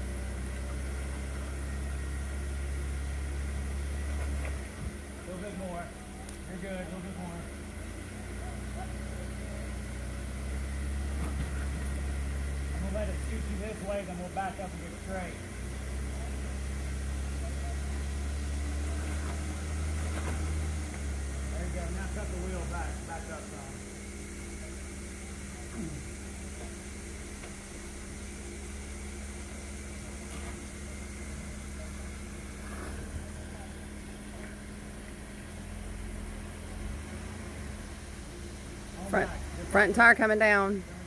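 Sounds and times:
car engine running at low speed: 0:00.0 - 0:41.0.

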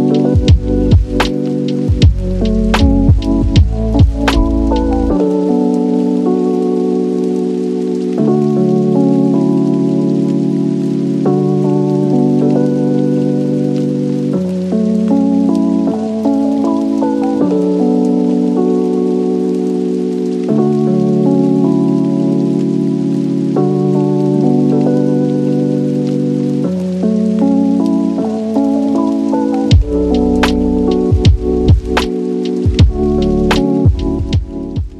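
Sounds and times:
rain-like hiss: 0:00.0 - 0:34.9
slow calm background music: 0:00.0 - 0:34.9.

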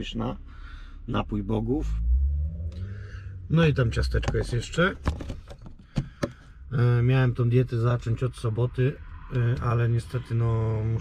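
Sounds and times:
low steady rumble: 0:00.0 - 0:11.0
sharp clicks and knocks: 0:04.1 - 0:06.5.

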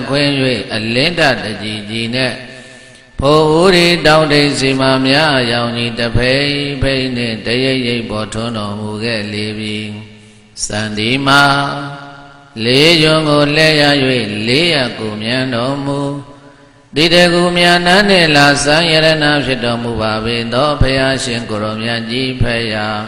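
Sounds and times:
person chanting: 0:00.0 - 0:23.0.

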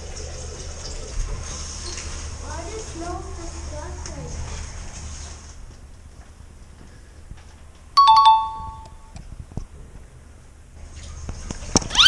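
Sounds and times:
two-note electronic chime: 0:08.0 - 0:09.0.

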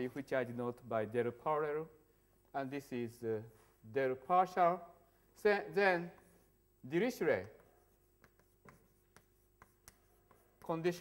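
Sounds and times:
chalk tapping and scratching: 0:05.8 - 0:11.0.

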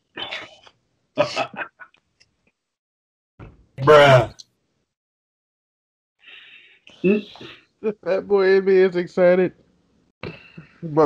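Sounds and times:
man laughing: 0:01.2 - 0:01.8, 0:07.8 - 0:08.4.

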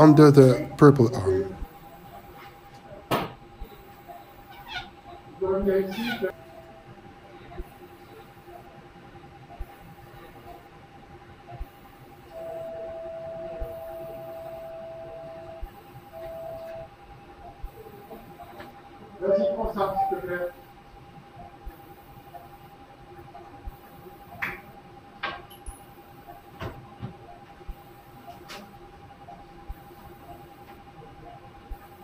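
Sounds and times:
electrosurgical beep tone: 0:00.0 - 0:10.7, 0:11.4 - 0:32.0
equipment hum: 0:00.0 - 0:32.0.

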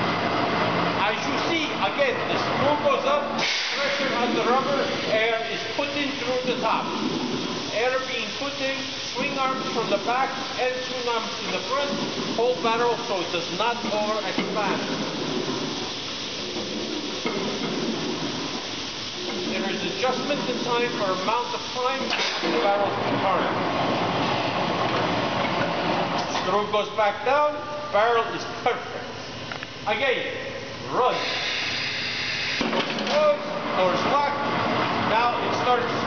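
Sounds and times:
machine rumbling: 0:00.0 - 0:27.0
compressed air hissing: 0:03.0 - 0:22.8, 0:30.5 - 0:34.5.

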